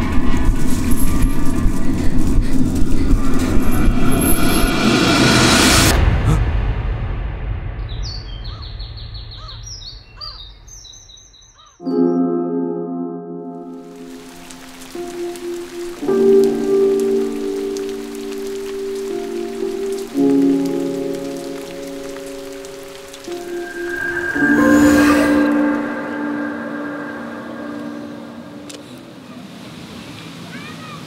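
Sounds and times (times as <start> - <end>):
rain falling: 0.0 - 6.0, 13.7 - 31.0
orchestral score slow chords: 11.9 - 29.2
brief rush of noise: 23.2 - 29.0.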